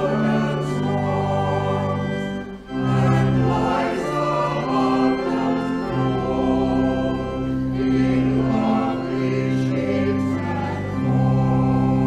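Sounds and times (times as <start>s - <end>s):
choir singing: 0.0s - 12.0s
organ playing held chords: 0.0s - 12.0s.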